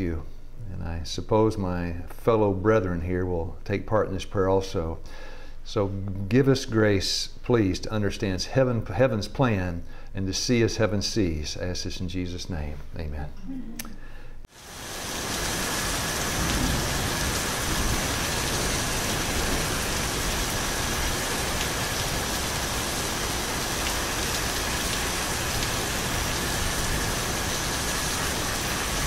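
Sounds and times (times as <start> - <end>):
steady rushing noise: 14.7 - 29.0.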